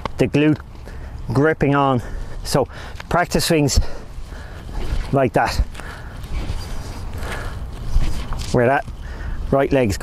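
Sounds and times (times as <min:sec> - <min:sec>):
wind rumbling on microphone: 0:03.6 - 0:10.0.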